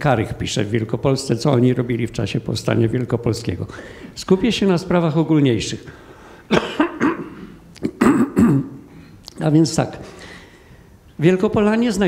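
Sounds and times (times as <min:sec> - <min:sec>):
man coughing: 0:06.5 - 0:08.9.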